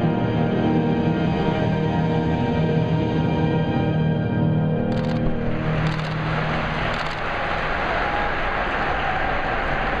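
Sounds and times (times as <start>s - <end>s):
echoing applause: 5.0s - 10.0s.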